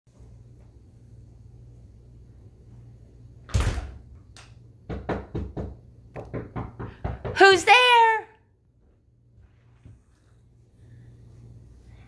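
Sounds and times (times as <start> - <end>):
knocking on door: 4.8 - 7.6.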